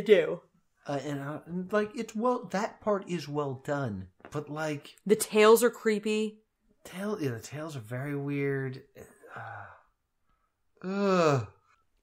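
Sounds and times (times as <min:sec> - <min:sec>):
person sighing: 0:09.0 - 0:10.0, 0:10.8 - 0:11.8.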